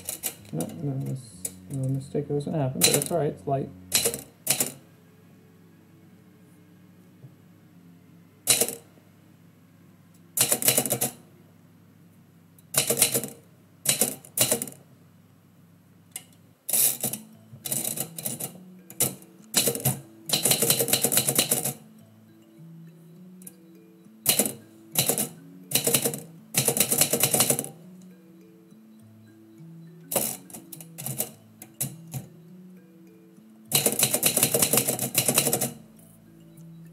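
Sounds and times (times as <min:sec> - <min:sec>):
typewriter keys striking: 0:02.8 - 0:03.2, 0:03.9 - 0:04.8, 0:08.5 - 0:08.8, 0:10.4 - 0:11.2, 0:12.8 - 0:14.8, 0:16.7 - 0:21.8, 0:24.3 - 0:27.8, 0:30.1 - 0:32.3, 0:33.7 - 0:35.8.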